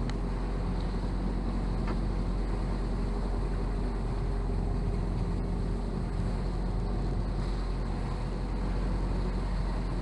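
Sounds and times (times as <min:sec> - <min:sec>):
motorboat engine: 0:00.0 - 0:10.0
water noise: 0:00.0 - 0:10.0.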